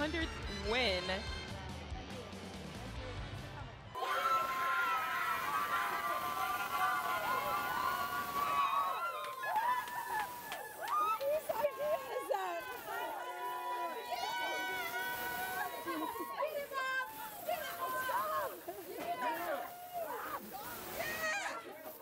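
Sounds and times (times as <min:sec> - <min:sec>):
women shouting and squealing: 0:04.0 - 0:21.8
women laughing: 0:14.1 - 0:16.7, 0:17.9 - 0:20.6.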